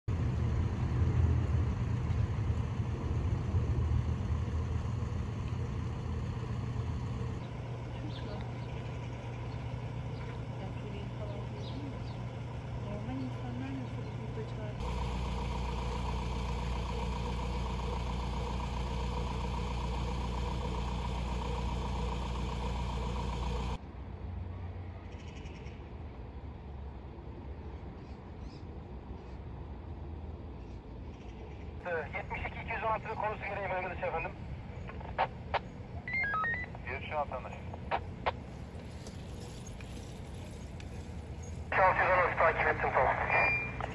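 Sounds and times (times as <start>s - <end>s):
vehicle engine idling: 0.1s - 23.8s, 31.8s - 43.9s
street background noise: 0.1s - 43.9s.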